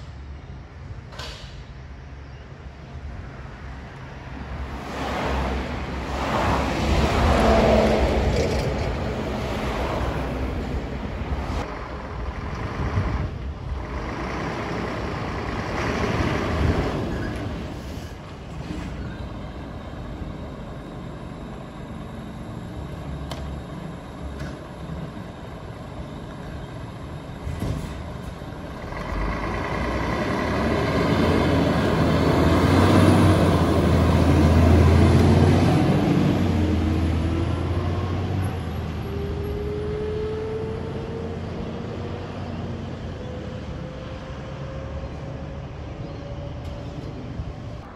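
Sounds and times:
cars passing: 0:03.0 - 0:47.9
rising engine whine: 0:04.3 - 0:47.9
diesel truck engine accelerating: 0:04.5 - 0:47.9.

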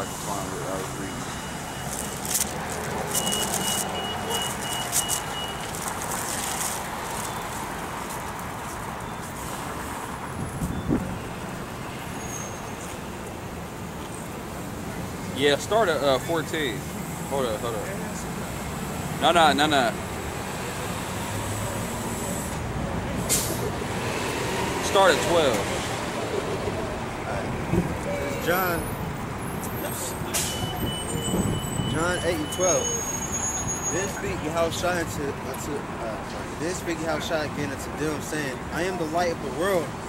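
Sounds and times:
city street traffic: 0:00.0 - 0:40.0
short sharp hiss: 0:23.3 - 0:23.7.

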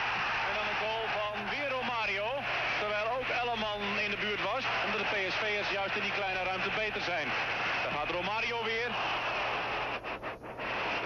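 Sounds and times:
stadium crowd voices: 0:00.0 - 0:11.0.

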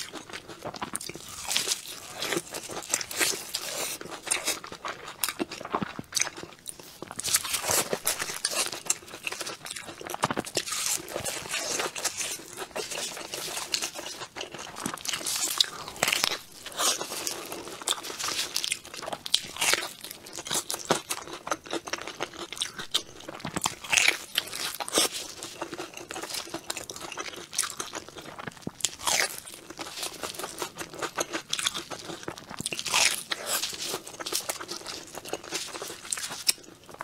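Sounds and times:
crunchy bites and chewing: 0:00.0 - 0:37.0.

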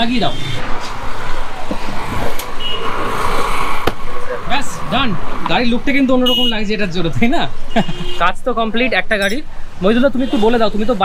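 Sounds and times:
passing vehicles: 0:00.0 - 0:11.0.

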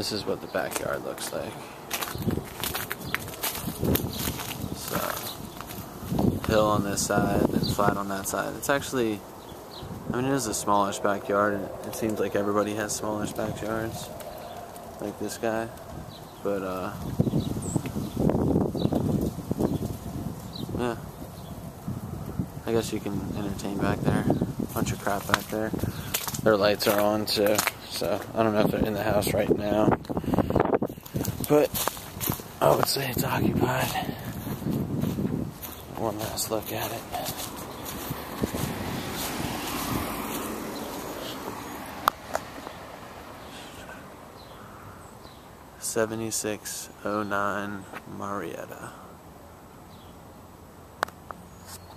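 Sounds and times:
car driving on asphalt: 0:34.2 - 0:45.4.

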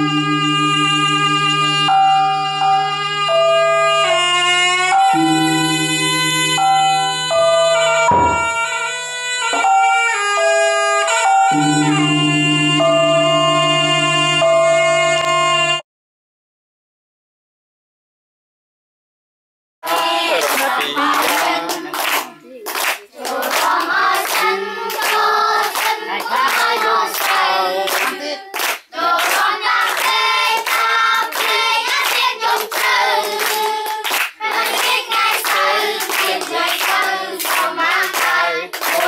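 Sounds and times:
group singing: 0:19.8 - 0:22.4, 0:23.0 - 0:39.0
hand clapping: 0:19.8 - 0:39.0.

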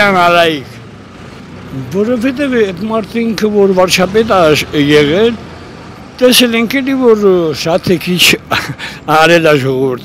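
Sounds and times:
man speaking: 0:00.0 - 0:00.8, 0:01.7 - 0:05.4, 0:06.2 - 0:10.0
bus passing close by: 0:00.0 - 0:07.6
street traffic: 0:00.0 - 0:10.0.

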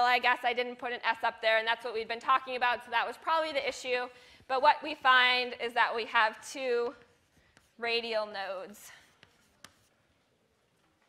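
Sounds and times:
chalk writing on blackboard: 0:06.1 - 0:10.3
chalk taps: 0:06.4 - 0:10.1.

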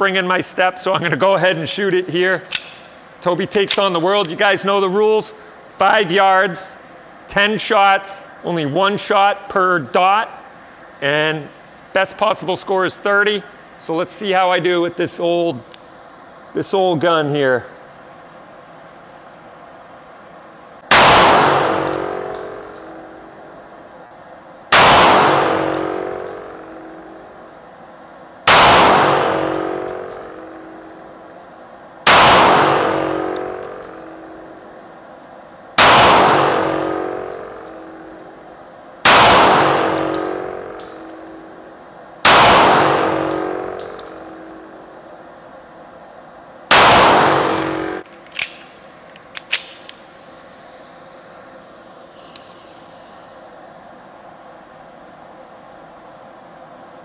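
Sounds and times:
pistol shots echoing: 0:20.9 - 0:22.6, 0:24.7 - 0:26.8, 0:28.5 - 0:30.6, 0:32.1 - 0:34.2, 0:35.8 - 0:38.0, 0:39.1 - 0:41.4, 0:42.3 - 0:44.2, 0:46.7 - 0:48.0.

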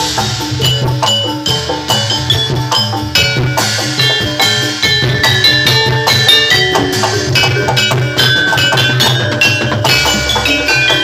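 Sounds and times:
metallophone notes ringing: 0:00.0 - 0:11.0
steady drum pulse: 0:00.0 - 0:11.0.

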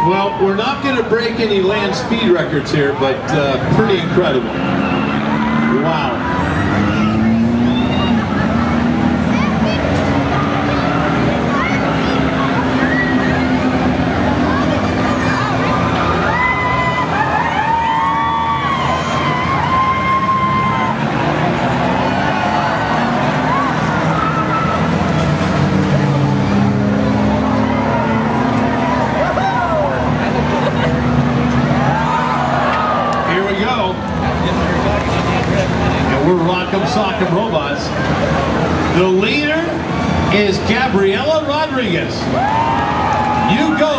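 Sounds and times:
crowd voices and shouts: 0:00.0 - 0:43.9
race car engines revving: 0:00.0 - 0:43.9.

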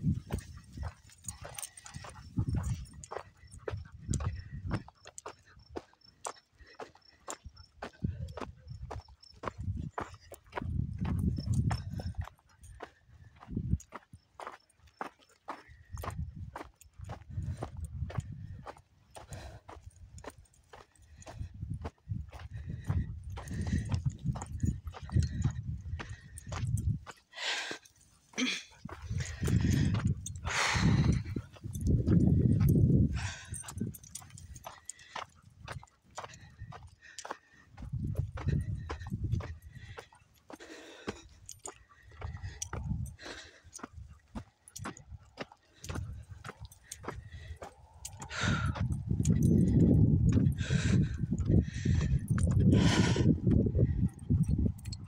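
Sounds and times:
footsteps crunching on gravel: 0:00.0 - 0:53.2.

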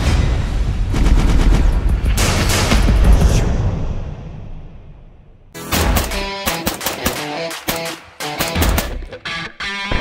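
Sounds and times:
gunshots: 0:05.6 - 0:09.2.

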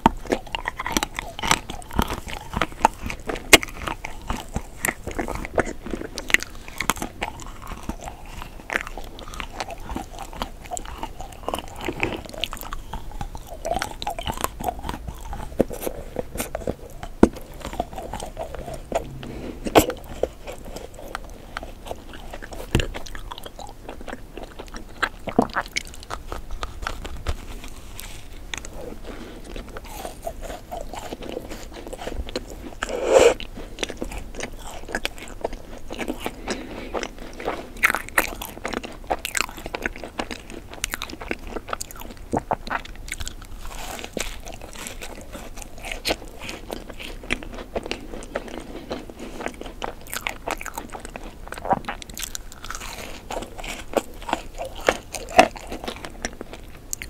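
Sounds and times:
chewing with mouth clicks: 0:00.0 - 0:57.0
crunchy bites: 0:00.0 - 0:57.0.

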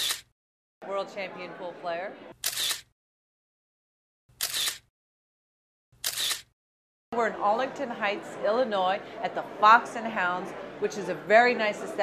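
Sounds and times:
camera shutter: 0:00.0 - 0:00.3, 0:02.4 - 0:02.9, 0:04.3 - 0:04.9, 0:06.0 - 0:06.6.

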